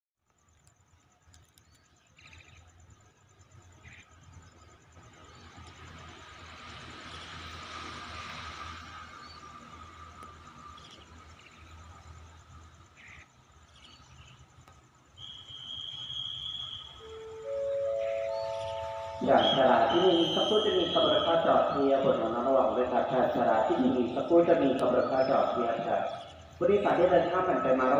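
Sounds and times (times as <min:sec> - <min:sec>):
rising chime: 0:17.0 - 0:23.5
low hum: 0:17.0 - 0:27.9.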